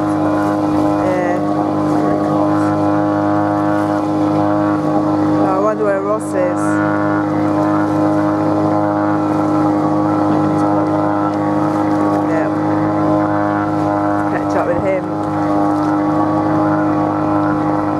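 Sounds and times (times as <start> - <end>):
boat engine drone: 0.0 - 17.9.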